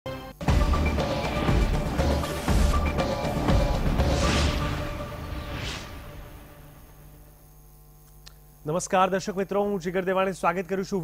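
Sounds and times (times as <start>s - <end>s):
news intro music: 0.1s - 7.4s
faint electrical mains hum: 6.6s - 11.0s.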